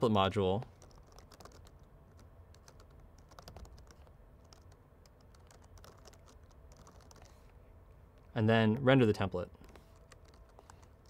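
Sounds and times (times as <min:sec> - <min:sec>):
faint keyboard typing: 0:00.6 - 0:07.6, 0:08.2 - 0:11.0.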